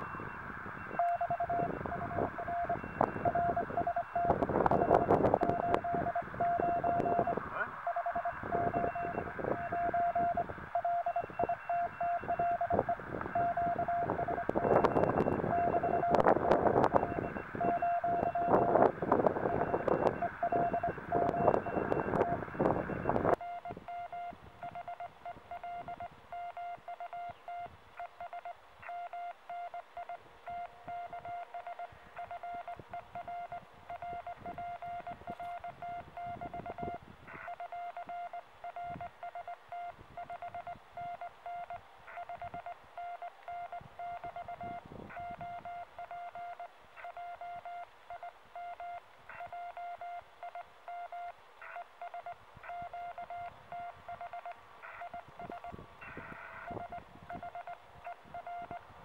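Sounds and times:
morse code beeps: 0.0s - 58.9s.

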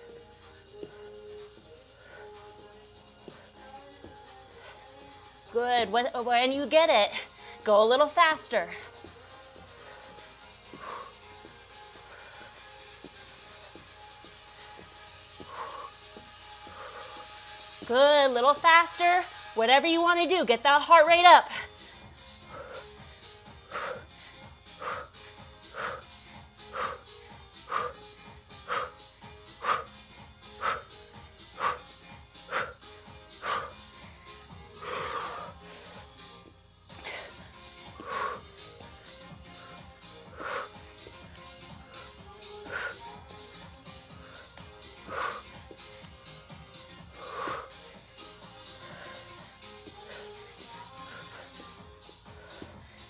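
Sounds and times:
woman breathing hard: 0.0s - 5.4s, 7.1s - 7.7s, 8.6s - 17.8s, 21.5s - 53.0s
background music: 0.0s - 53.0s.

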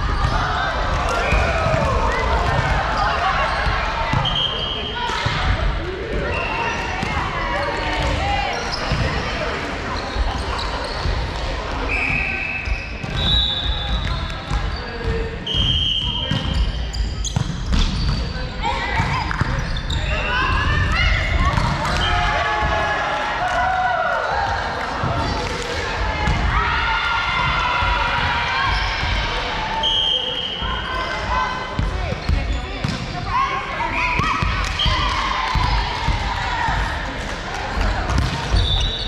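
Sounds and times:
sneakers squeaking on court: 6.2s - 9.4s, 10.0s - 11.2s, 16.2s - 20.7s, 30.6s - 33.2s.

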